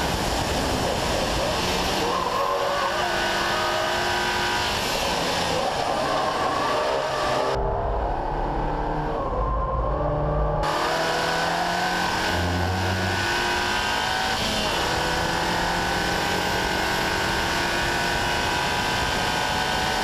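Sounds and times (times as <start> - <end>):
car engine at full throttle: 0.0 - 20.0.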